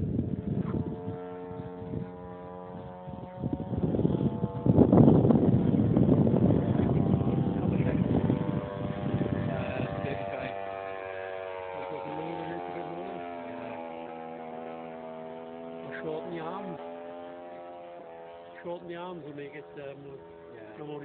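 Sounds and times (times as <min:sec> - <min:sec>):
model plane engine droning: 0:00.0 - 0:21.0.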